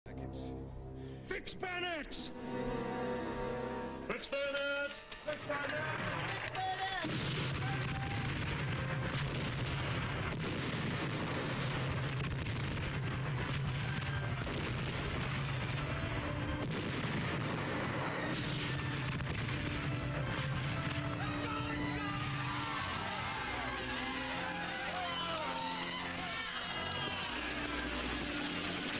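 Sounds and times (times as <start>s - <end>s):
music: 0.1s - 28.9s
artillery shells bursting: 5.8s - 28.9s
gunfire: 5.8s - 28.9s.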